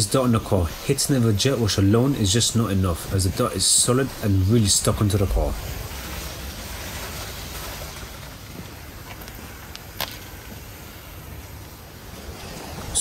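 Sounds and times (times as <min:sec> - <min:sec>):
spray hissing on car paint: 0:00.0 - 0:13.0.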